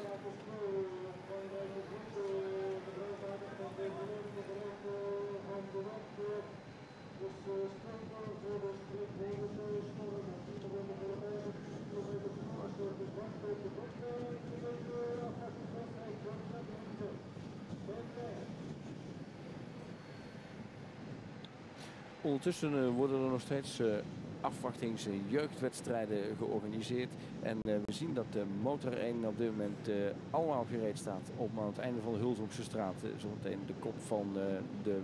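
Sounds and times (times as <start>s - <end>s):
road and wind noise: 0.0s - 35.0s.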